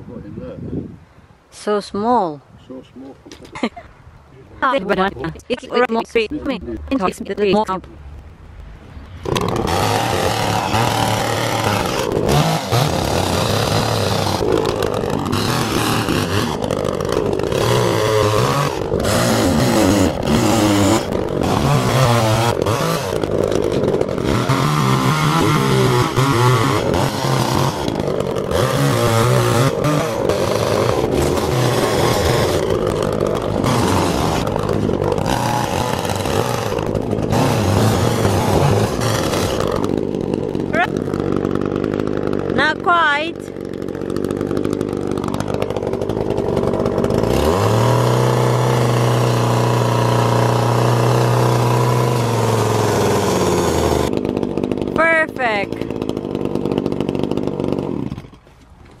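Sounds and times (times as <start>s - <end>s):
chainsaw cutting wood: 9.1s - 59.0s.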